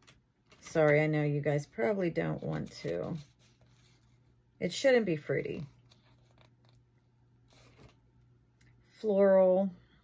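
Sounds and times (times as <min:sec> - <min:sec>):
soft rustle: 0:00.0 - 0:04.4.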